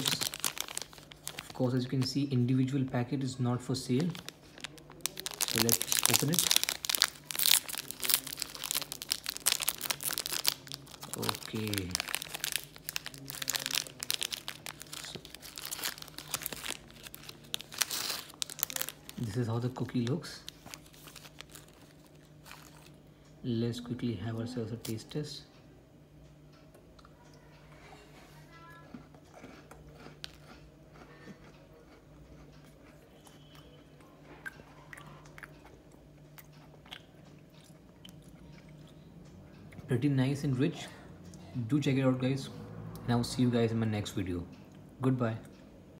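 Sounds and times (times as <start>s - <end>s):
plastic wrapper crinkling: 0.0s - 2.3s, 3.8s - 23.0s
low steady hum: 0.0s - 45.9s
cookie crunching when chewed: 3.9s - 23.0s, 28.8s - 39.1s.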